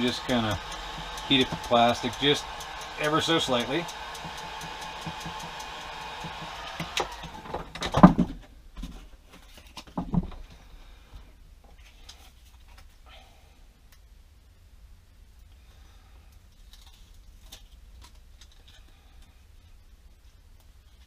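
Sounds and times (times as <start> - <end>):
heat gun blowing: 0.0 - 7.6.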